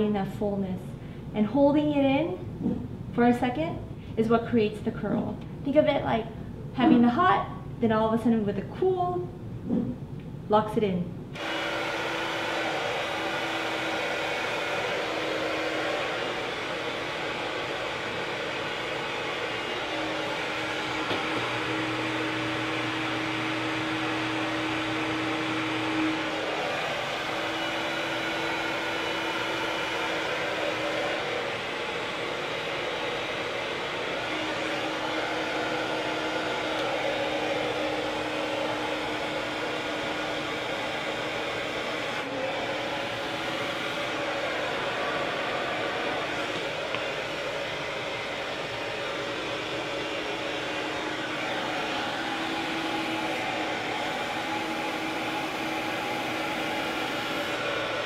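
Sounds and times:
hair dryer blowing: 0:11.3 - 0:58.0.

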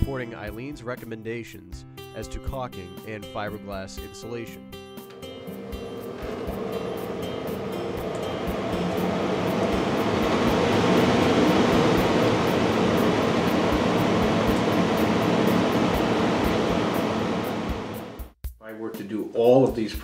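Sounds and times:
fan rushing air: 0:05.0 - 0:18.4.

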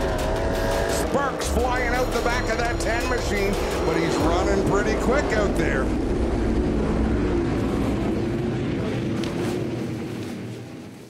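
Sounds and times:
race car engine droning: 0:00.0 - 0:11.0.

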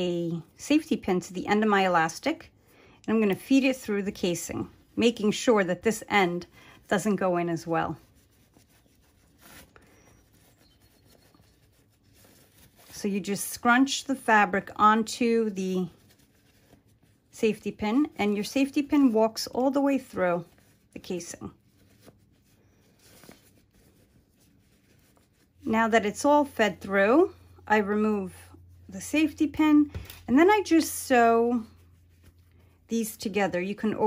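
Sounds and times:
fabric rustling: 0:03.2 - 0:34.0.

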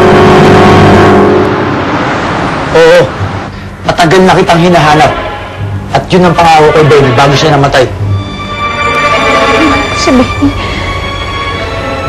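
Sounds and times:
dramatic swoosh: 0:00.0 - 0:03.8
held musical tone: 0:04.7 - 0:12.0.

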